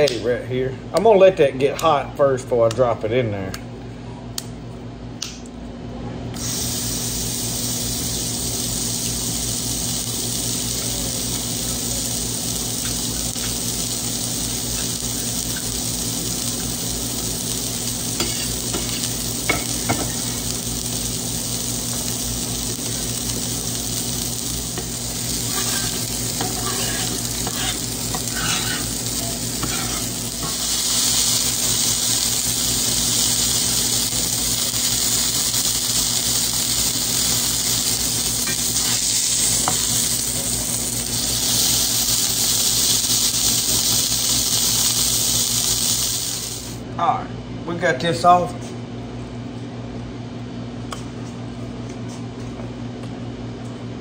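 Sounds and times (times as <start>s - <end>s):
sausage sizzling in skillet: 6.4s - 46.8s.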